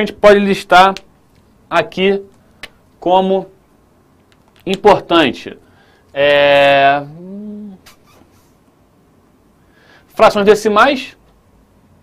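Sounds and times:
man's hesitation vowel: 0:06.2 - 0:07.8.

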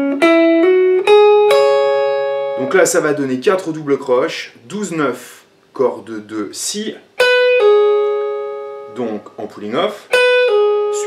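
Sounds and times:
electric guitar pull-off: 0:00.0 - 0:03.3.

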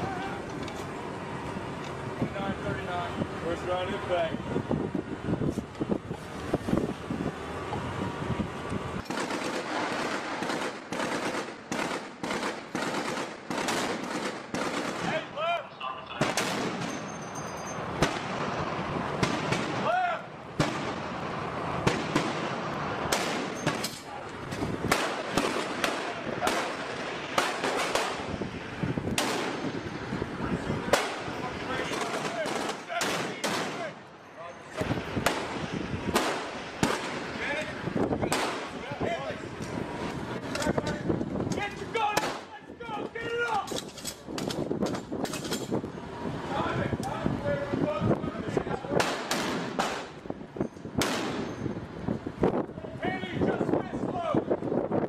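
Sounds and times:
gunshots: 0:09.0 - 0:15.2, 0:16.2 - 0:17.0, 0:18.0 - 0:18.6, 0:19.2 - 0:19.9, 0:20.6 - 0:21.1, 0:21.8 - 0:24.0, 0:24.8 - 0:28.3, 0:29.2 - 0:29.7, 0:30.9 - 0:34.0, 0:35.2 - 0:37.3, 0:38.2 - 0:38.8, 0:42.2 - 0:42.5, 0:49.0 - 0:50.2, 0:51.0 - 0:51.6
men's voices: 0:14.9 - 0:16.5, 0:25.6 - 0:27.0, 0:30.2 - 0:35.2, 0:37.2 - 0:43.8, 0:46.4 - 0:49.3, 0:52.7 - 0:54.6.

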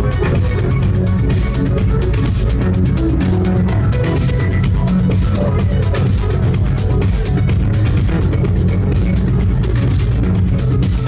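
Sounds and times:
techno over club sound system: 0:00.0 - 0:11.0.

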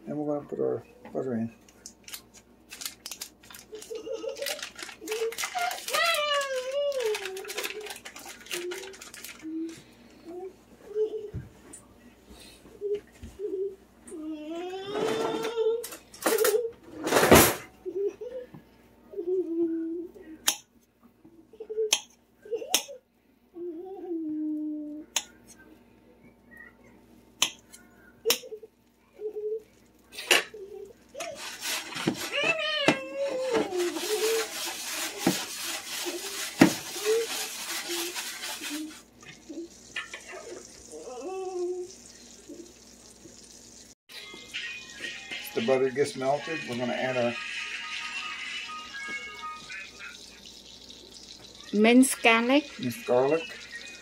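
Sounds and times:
frying pan hissing: 0:31.3 - 0:32.3, 0:33.7 - 0:45.0, 0:47.4 - 0:54.0.

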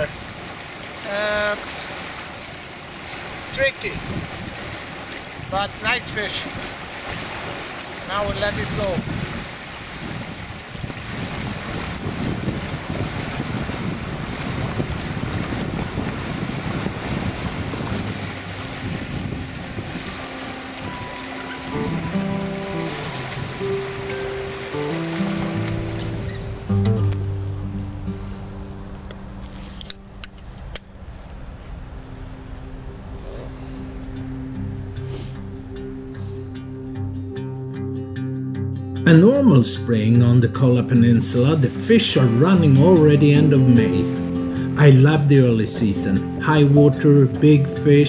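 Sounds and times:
river water rushing: 0:00.0 - 0:38.1, 0:40.8 - 0:47.7
soft music: 0:18.1 - 0:30.2, 0:32.3 - 0:48.0.

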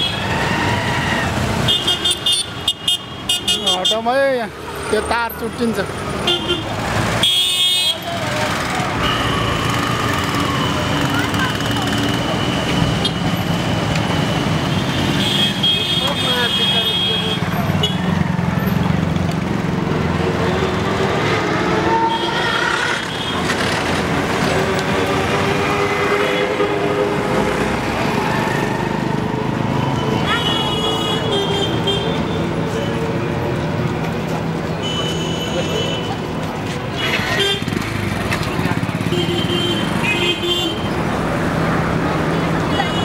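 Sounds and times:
street traffic: 0:00.0 - 0:43.0
vehicle horns tooting: 0:01.6 - 0:04.2, 0:06.2 - 0:08.2, 0:08.9 - 0:09.9, 0:14.5 - 0:18.2, 0:21.7 - 0:23.7, 0:25.2 - 0:27.4, 0:34.8 - 0:36.3
people talking: 0:10.2 - 0:12.6, 0:30.2 - 0:31.4, 0:42.6 - 0:43.0.

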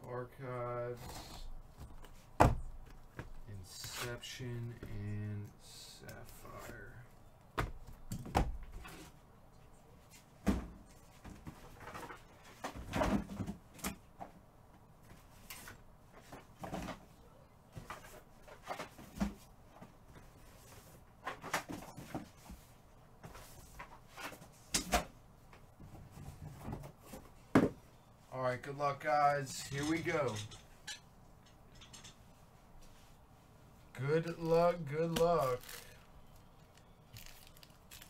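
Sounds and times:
objects knocking and thudding: 0:01.8 - 0:03.4, 0:07.6 - 0:09.1, 0:10.4 - 0:14.4, 0:16.2 - 0:17.1, 0:25.8 - 0:27.8.

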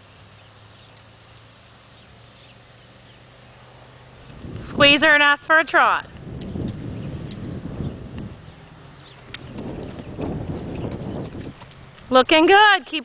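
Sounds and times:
hooves trotting on dirt: 0:06.0 - 0:13.0.

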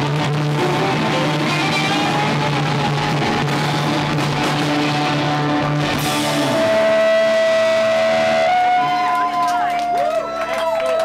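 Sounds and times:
rock song: 0:00.0 - 0:09.4
electric guitar feedback: 0:00.0 - 0:10.4.

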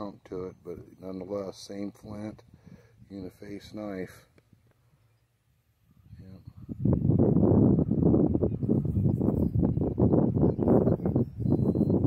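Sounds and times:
rumbling crackling microphone noise: 0:06.0 - 0:12.0.

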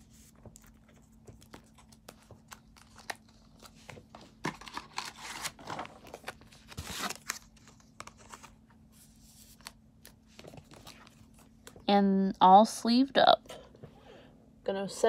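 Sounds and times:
plastic card sleeves rustling: 0:00.0 - 0:11.8.

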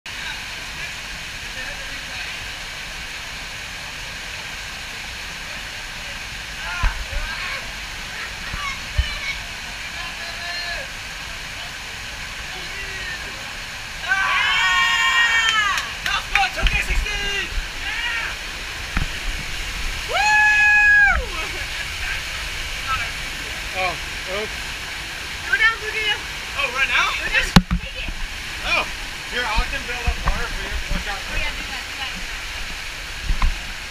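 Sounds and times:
water rushing into a pool: 0:00.1 - 0:33.9
people shouting: 0:14.0 - 0:16.0, 0:20.0 - 0:21.5.

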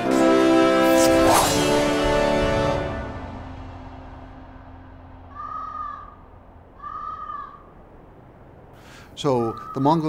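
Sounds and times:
bird calling: 0:05.3 - 0:08.0, 0:08.8 - 0:10.0.

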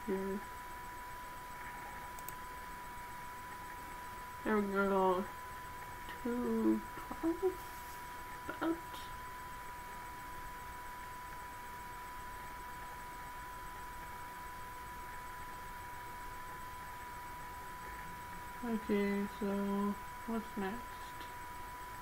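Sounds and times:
high-pitched whine: 0:00.0 - 0:22.0.

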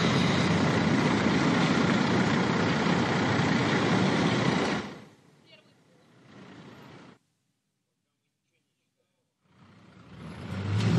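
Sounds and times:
bus engine rumbling: 0:00.0 - 0:07.3, 0:09.2 - 0:10.9
street traffic: 0:00.0 - 0:10.9.

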